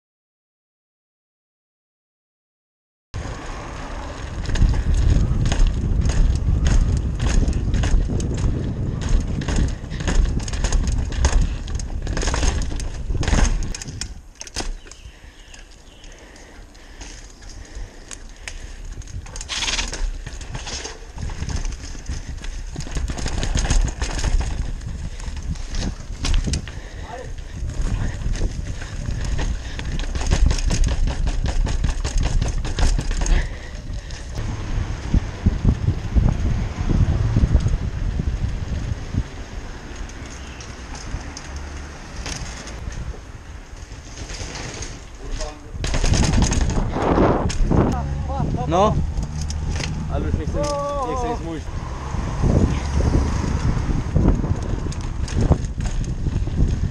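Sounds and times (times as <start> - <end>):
bike rattles and knocks: 3.2 - 51.8, 52.4 - 56.9
bike tyre rumble on bricks: 3.2 - 56.9.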